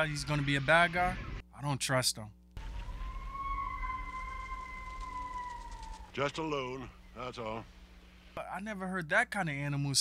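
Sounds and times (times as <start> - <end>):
long wailing animal call: 2.6 - 6.2.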